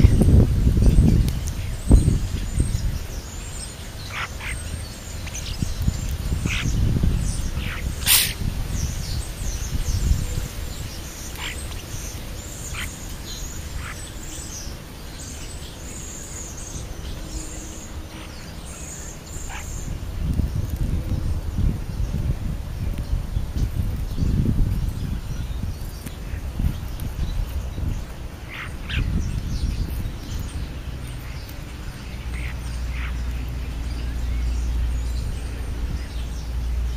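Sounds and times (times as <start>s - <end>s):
birds chirping: 0.0s - 36.9s.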